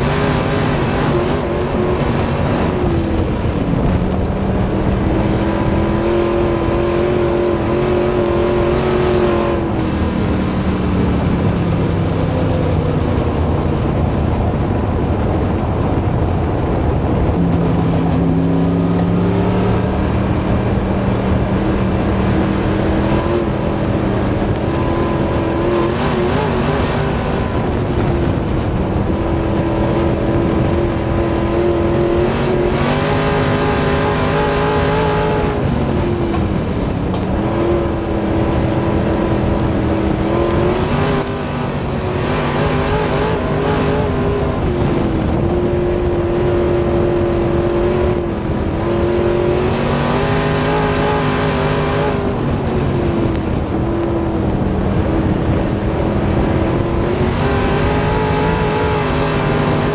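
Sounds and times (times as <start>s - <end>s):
race car engine at speed: 0.0s - 59.9s
steady rush of noise: 0.0s - 59.9s.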